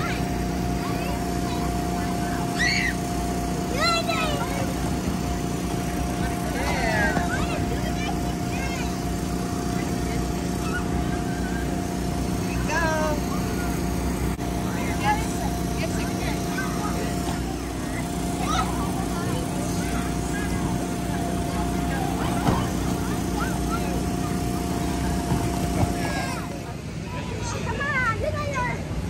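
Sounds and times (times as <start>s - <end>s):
electric blower humming: 0.0s - 27.0s
children shouting and chattering: 0.0s - 29.0s.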